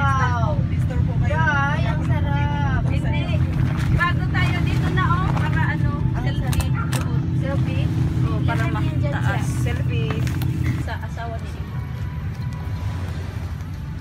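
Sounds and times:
people talking and exclaiming: 0.0s - 11.7s
steady low hum: 0.0s - 12.2s.

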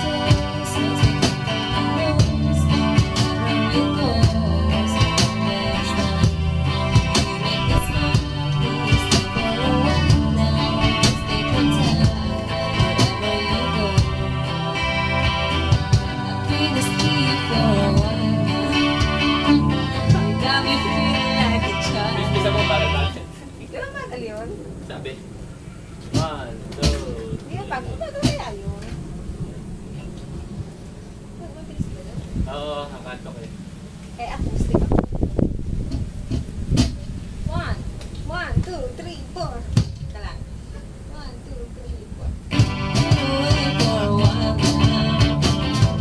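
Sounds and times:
cajon beats: 0.0s - 23.0s, 26.1s - 28.9s, 35.9s - 40.4s, 42.3s - 46.0s
strummed electric-acoustic guitar: 0.0s - 23.4s, 42.5s - 46.0s.

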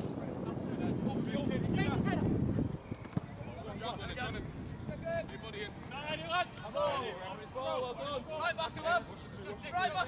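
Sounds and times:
wind rumbling on microphone: 0.0s - 6.4s.

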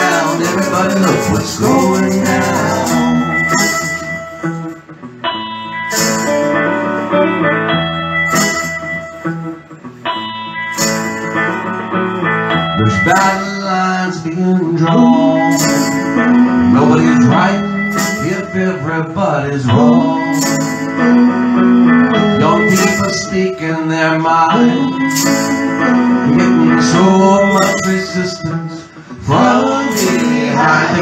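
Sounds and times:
woman singing: 0.0s - 3.7s
shaken hand percussion: 0.0s - 4.9s, 8.3s - 9.0s, 15.4s - 18.6s, 20.3s - 21.2s, 22.5s - 23.4s, 25.0s - 25.9s, 27.4s - 28.3s, 29.3s - 31.0s
electric guitar playing: 0.0s - 31.0s.

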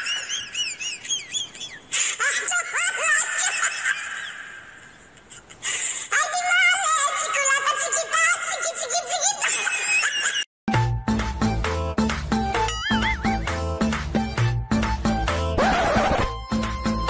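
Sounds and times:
music with held notes: 10.7s - 15.6s.

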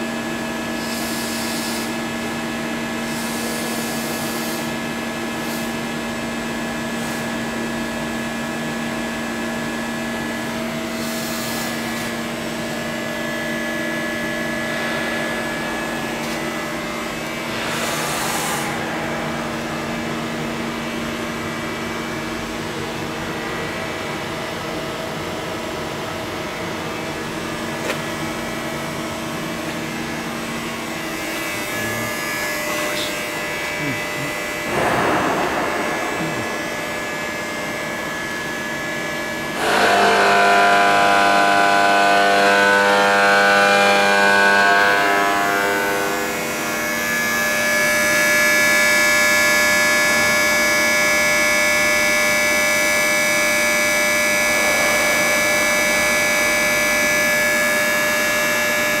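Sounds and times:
lathe machine whine: 0.0s - 59.0s.

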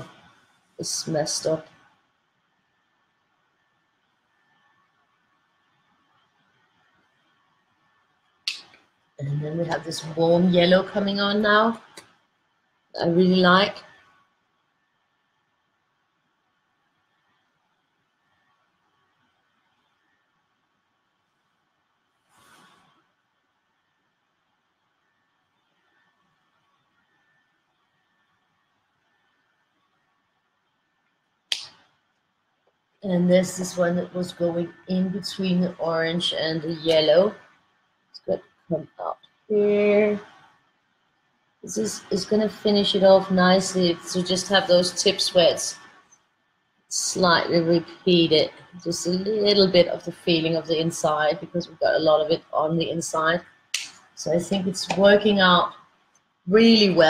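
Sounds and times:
faint steady hum: 0.0s - 57.0s
soft rustle: 21.1s - 23.2s.

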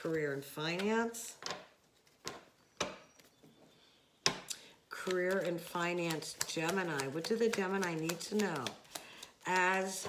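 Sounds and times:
cards being shuffled: 5.0s - 10.0s.

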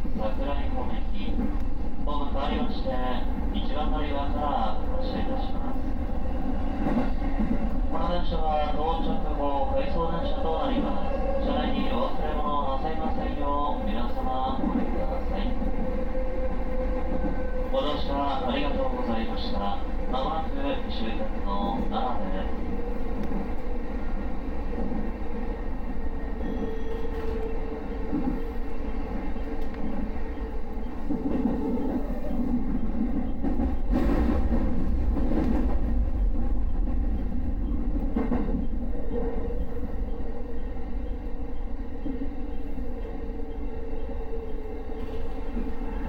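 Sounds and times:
train low rumble with steady tone: 0.0s - 46.0s
train wheels clicking over points: 26.0s - 46.0s.

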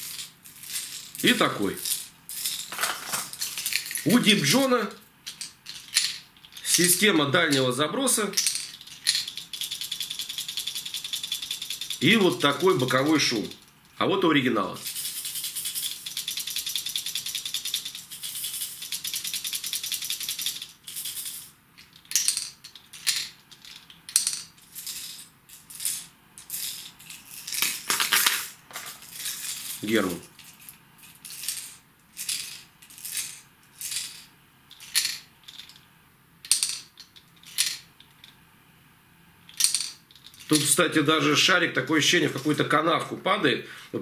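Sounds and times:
plastic fishing lure rattling: 8.4s - 12.7s, 30.4s - 35.8s.

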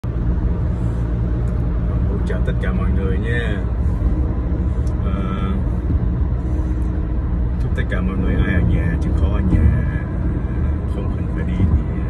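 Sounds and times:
car interior road rumble: 0.0s - 12.0s.

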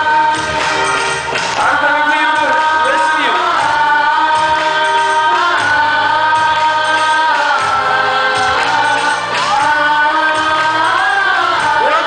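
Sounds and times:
amplified music: 0.0s - 12.0s
crowd singing patriotic song: 0.0s - 12.0s.

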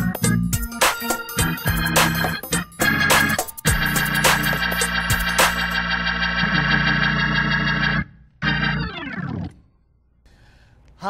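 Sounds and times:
drawbar organ playing gospel chords: 0.0s - 9.4s.

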